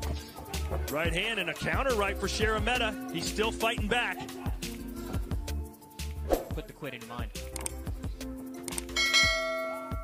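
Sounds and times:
background music: 0:00.0 - 0:10.0
bell strike ringing: 0:09.0 - 0:10.0.

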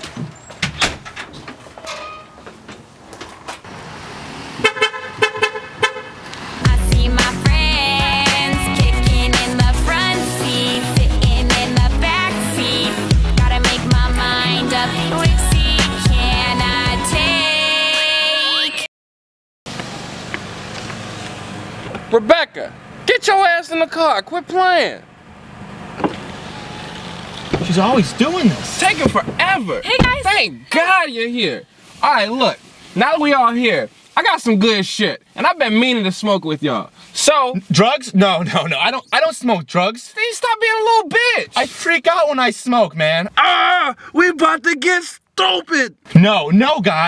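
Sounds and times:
car horn honking: 0:04.6 - 0:06.3
bass-heavy pop music: 0:06.5 - 0:18.9, 0:27.6 - 0:30.9
car engine idling: 0:19.7 - 0:31.0
person shouting: 0:43.4 - 0:44.1.

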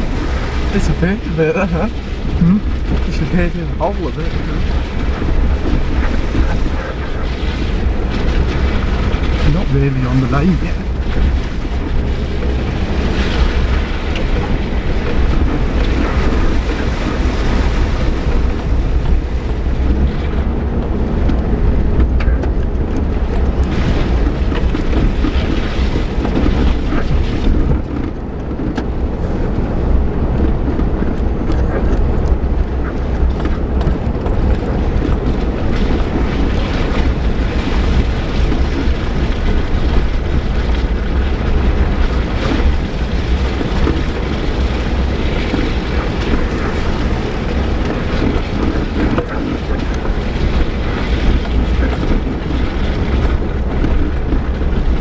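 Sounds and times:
car engine and tyres droning: 0:00.0 - 0:55.0
car knocks and rattles: 0:00.0 - 0:55.0.

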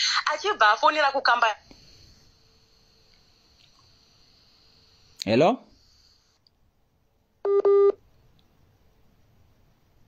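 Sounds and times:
phone beeps: 0:07.4 - 0:08.0.

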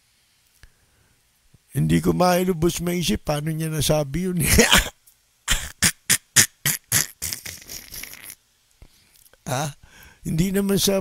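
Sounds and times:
man laughing breathily: 0:05.5 - 0:08.4.

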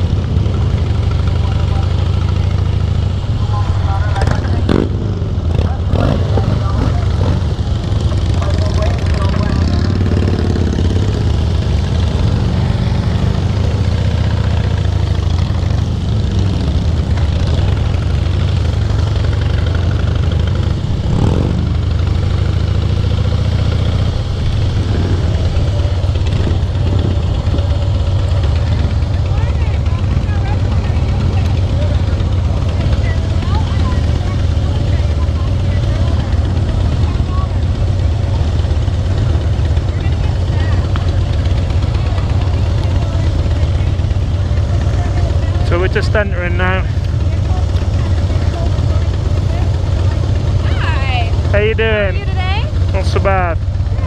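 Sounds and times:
motorcycle engine idling: 0:00.0 - 0:54.0
other motorcycles idling: 0:00.0 - 0:54.0.

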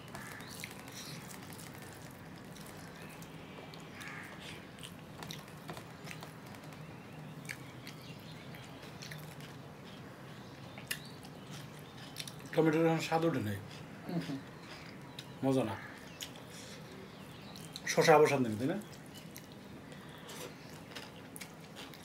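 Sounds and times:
faint steady hum: 0:00.0 - 0:22.0
man chewing with mouth smacks: 0:00.1 - 0:12.6, 0:16.1 - 0:17.9, 0:18.8 - 0:22.0.

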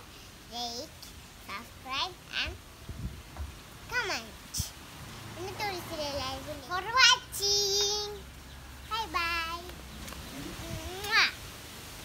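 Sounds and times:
boy singing held notes: 0:05.5 - 0:08.3, 0:08.9 - 0:11.2.

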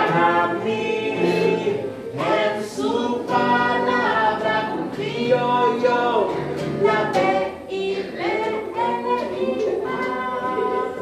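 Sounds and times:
children singing in chorus: 0:00.0 - 0:11.0.

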